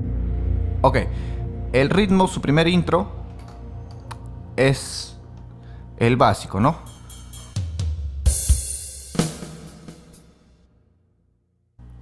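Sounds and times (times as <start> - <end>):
low bass note: 0.0 - 6.1
cymbal crash: 6.8 - 10.7.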